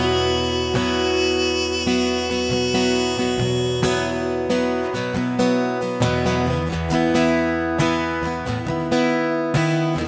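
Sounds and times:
acoustic guitar strumming chords: 0.0 - 10.0.

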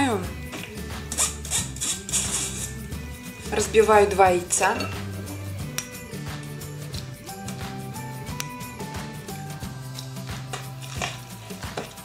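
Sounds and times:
background music with bass line: 0.0 - 12.0
scraping food from metal sieve: 1.1 - 2.8.

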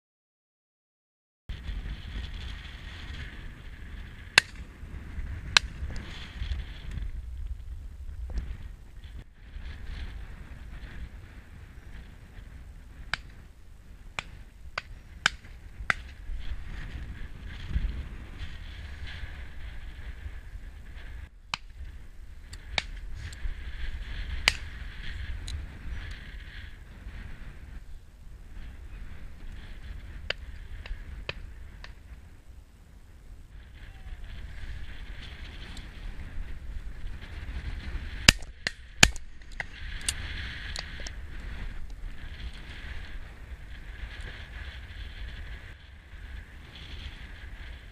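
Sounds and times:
wind noise on microphone: 1.5 - 47.9.

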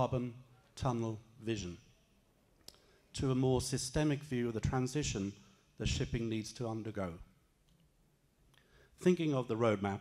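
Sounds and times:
man speaking into a microphone: 0.0 - 2.0, 2.9 - 7.5, 8.8 - 10.0.

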